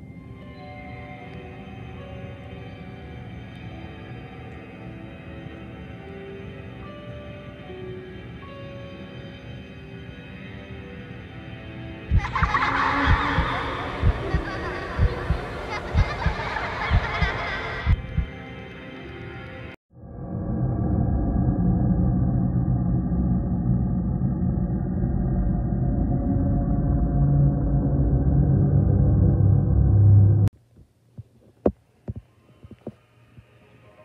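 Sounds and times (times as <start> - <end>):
heartbeat thumps: 12.1 - 18.4.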